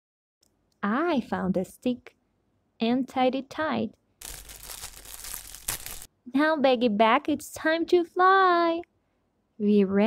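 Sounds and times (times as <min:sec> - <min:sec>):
plastic bag crinkling: 0:04.2 - 0:06.1.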